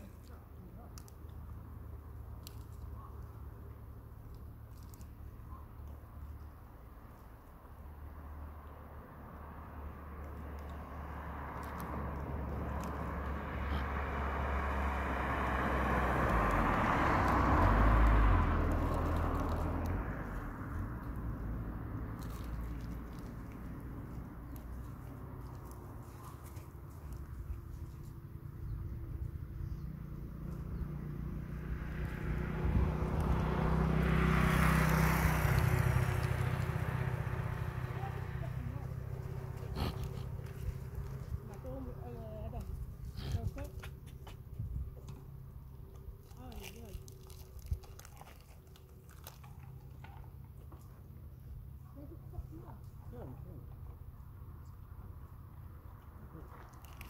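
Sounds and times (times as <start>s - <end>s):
vehicles passing on road: 0.0s - 57.0s.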